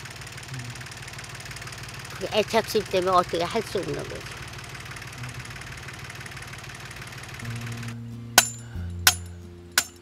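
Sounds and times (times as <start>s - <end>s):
hammer knocking metal pipe: 8.4s - 10.0s.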